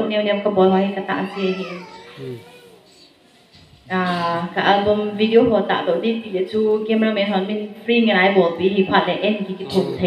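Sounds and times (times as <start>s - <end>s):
woman's voice through microphone: 0.0s - 2.1s, 3.8s - 10.0s.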